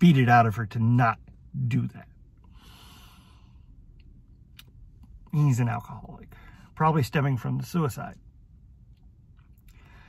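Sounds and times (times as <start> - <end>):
low hum in car cabin: 0.0 - 10.0
man breathing softly: 2.4 - 3.8, 6.3 - 6.8, 9.7 - 10.0.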